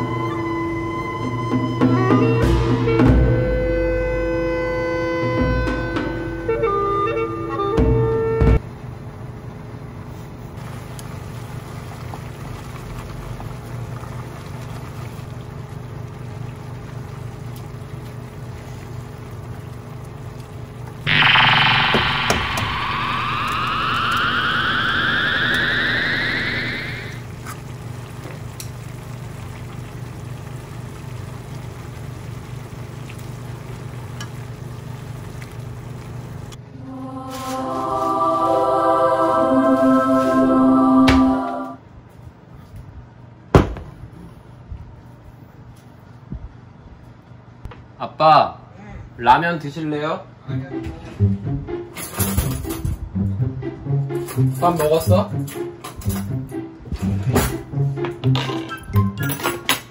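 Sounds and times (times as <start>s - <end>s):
noodles simmering in pan: 10.6s - 20.9s, 27.3s - 36.4s
rising charging-up whine: 21.0s - 27.3s, 36.7s - 41.8s
steady low hum: 21.0s - 27.4s.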